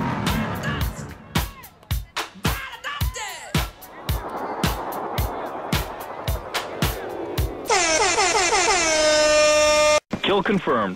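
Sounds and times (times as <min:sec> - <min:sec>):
music beat: 0:00.3 - 0:08.8
air horn sound effect: 0:07.7 - 0:10.1.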